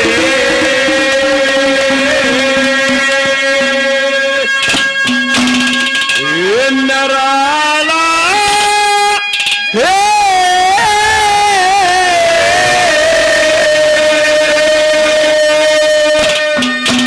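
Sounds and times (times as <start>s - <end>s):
man singing a long high note: 0.0s - 4.6s, 6.2s - 16.6s
live musical accompaniment: 0.0s - 17.0s.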